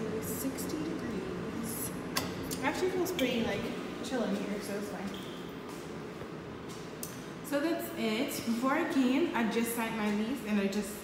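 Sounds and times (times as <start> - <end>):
steady room hiss: 0.0 - 11.0.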